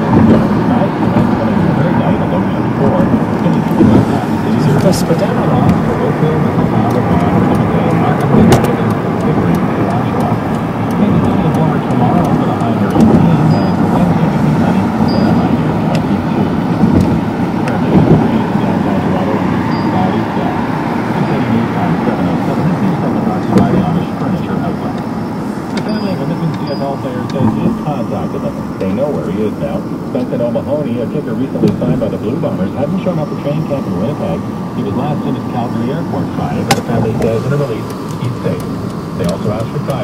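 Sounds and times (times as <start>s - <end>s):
car road and engine noise: 0.0s - 40.0s
indistinct voices: 0.0s - 40.0s.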